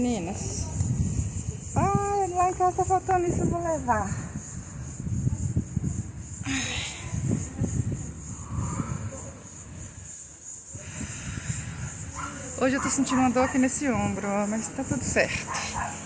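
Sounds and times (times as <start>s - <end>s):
wind rumble on microphone: 0.0s - 16.0s
person sighing: 6.4s - 7.1s
hissing exhale: 6.4s - 7.5s, 8.2s - 10.1s, 10.7s - 12.4s.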